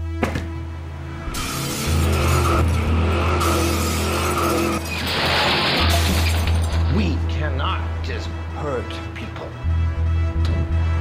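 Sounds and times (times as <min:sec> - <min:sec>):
car tires skidding and squealing: 0:01.4 - 0:06.4.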